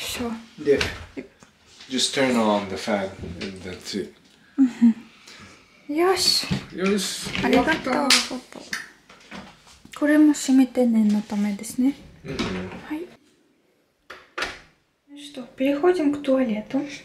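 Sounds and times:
man talking: 1.9s - 4.2s, 12.2s - 12.9s.

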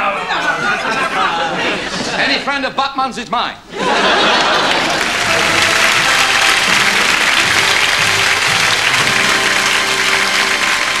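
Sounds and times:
audience applauding: 4.0s - 11.0s
music playing: 4.6s - 11.0s.

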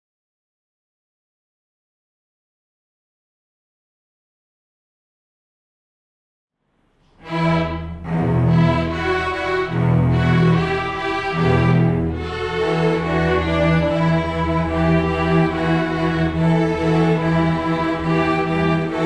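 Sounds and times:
string orchestra playing: 7.0s - 19.0s.

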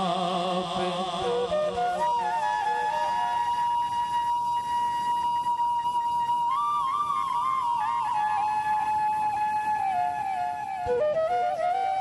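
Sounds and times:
flute holding long note: 1.2s - 12.0s.

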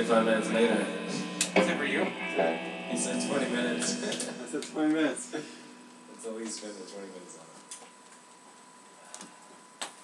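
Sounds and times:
faint high-pitched hum: 0.0s - 9.8s.

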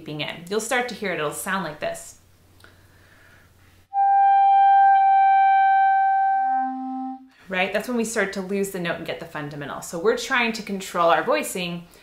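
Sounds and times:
breath: 2.6s - 3.8s
clarinet holding a high note: 3.9s - 7.3s.

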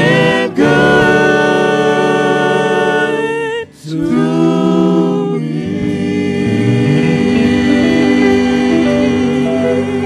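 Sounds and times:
gospel group singing in harmony: 0.0s - 10.0s.

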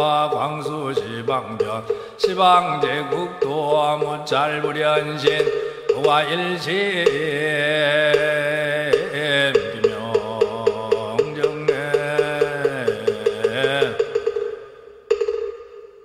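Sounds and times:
person chanting: 0.0s - 14.1s
wooden fish drum strokes: 0.0s - 16.0s.

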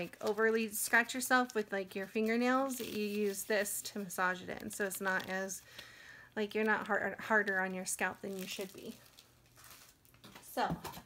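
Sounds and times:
faint rustles of items handled: 0.0s - 11.0s.

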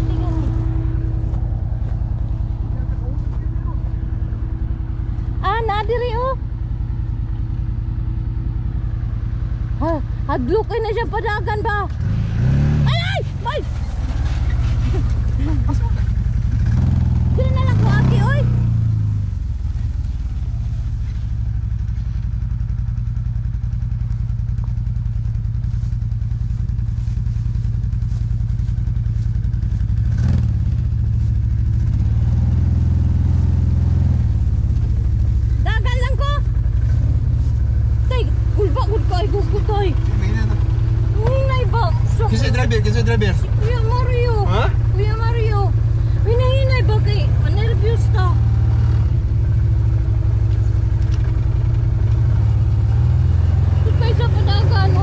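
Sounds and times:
people talking: 0.0s - 0.6s, 2.8s - 4.0s, 5.4s - 6.4s, 9.8s - 11.9s, 12.9s - 13.7s, 14.9s - 16.1s, 17.4s - 18.5s, 35.6s - 36.4s, 38.1s - 40.6s, 41.2s - 48.4s, 53.8s - 55.0s
utility vehicle engine running: 0.0s - 55.0s.

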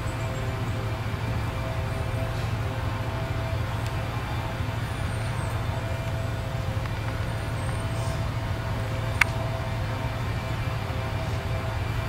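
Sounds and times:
faint high steady tones: 0.0s - 12.0s
steady low hum: 0.0s - 12.0s.

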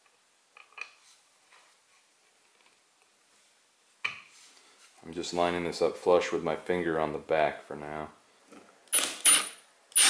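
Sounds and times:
screws clicking into wood holes: 8.9s - 10.0s.

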